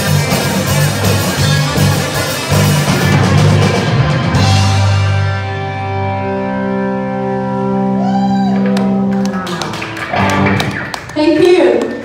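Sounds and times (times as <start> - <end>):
live rock music: 0.0 - 12.0
crowd whooping and calling out: 7.9 - 9.1
people clapping: 8.5 - 12.0.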